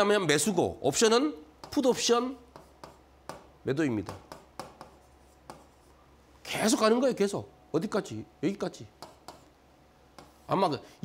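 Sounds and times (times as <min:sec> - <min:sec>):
stylus tapping on touchscreen: 0:02.5 - 0:05.8, 0:09.0 - 0:09.5, 0:10.1 - 0:10.4.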